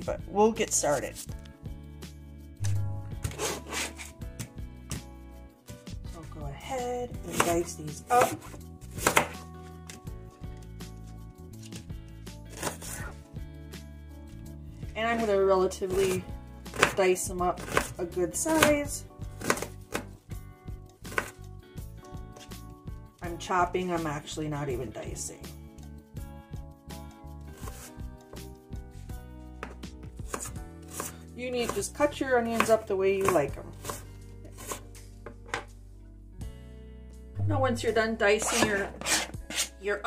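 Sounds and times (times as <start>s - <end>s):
background music: 0.0s - 40.0s
knife slicing onion on cutting board: 3.2s - 5.0s, 7.2s - 10.0s, 12.5s - 13.2s, 15.9s - 20.2s, 21.1s - 21.4s, 27.6s - 28.5s, 29.6s - 35.6s, 38.4s - 39.8s.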